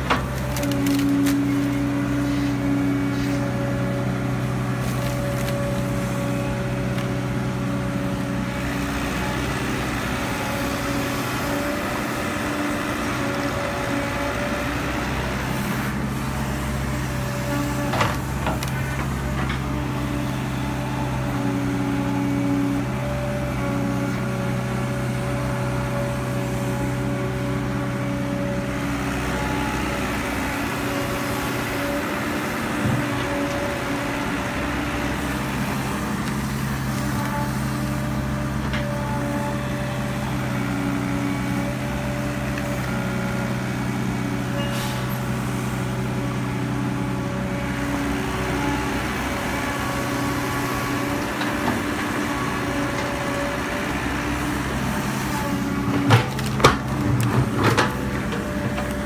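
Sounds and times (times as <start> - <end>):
diesel engine under load: 0.0 - 59.0.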